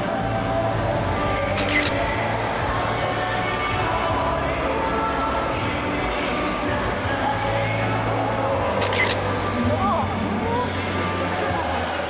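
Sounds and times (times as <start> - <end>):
crowd chatter: 0.0 - 12.0
music in a large hall: 0.0 - 12.0
camera shutter clicking: 1.6 - 2.0, 8.8 - 9.2.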